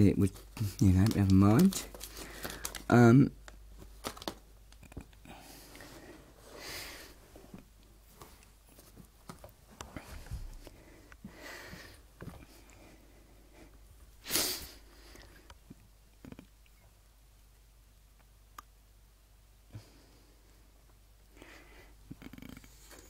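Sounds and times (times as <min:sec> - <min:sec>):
person sniffing: 0:14.2 - 0:15.4.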